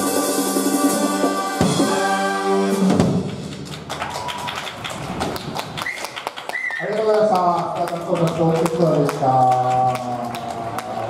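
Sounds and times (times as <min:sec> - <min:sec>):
big band final chord: 0:00.0 - 0:03.2
audience clapping: 0:03.1 - 0:11.0.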